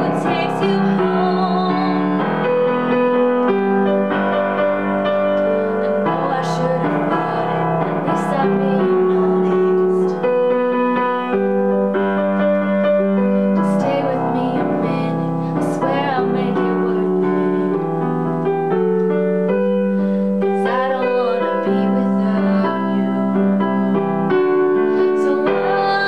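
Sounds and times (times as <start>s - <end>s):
woman singing: 0.0s - 2.9s, 5.4s - 11.5s, 13.4s - 18.1s, 20.4s - 26.0s
digital piano chords: 0.0s - 26.0s.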